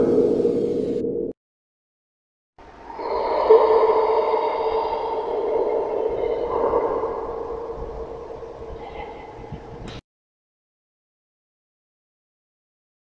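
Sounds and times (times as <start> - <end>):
droning tones: 2.6 - 10.0.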